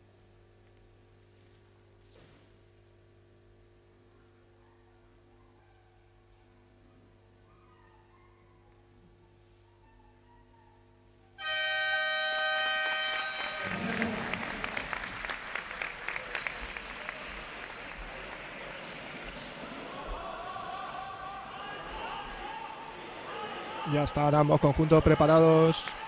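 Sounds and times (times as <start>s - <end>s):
arena horn blast: 11.4s - 15.2s
crowd applauding: 11.4s - 26.0s.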